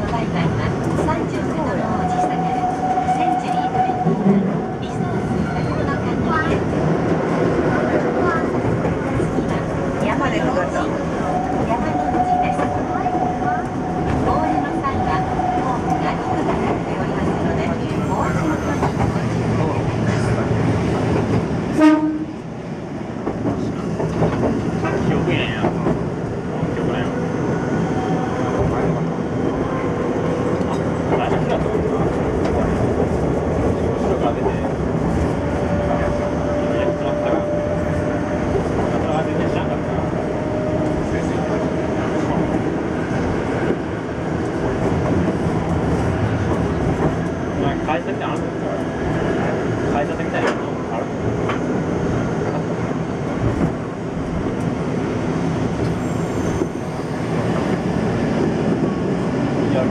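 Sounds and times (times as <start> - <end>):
tram wheels on rails: 0.0 - 59.9
tram motor whine: 34.5 - 59.6.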